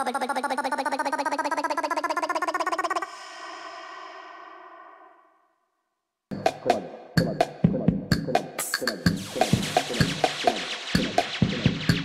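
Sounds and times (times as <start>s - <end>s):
rapid stuttering synth pulses: 9.2s - 12.0s.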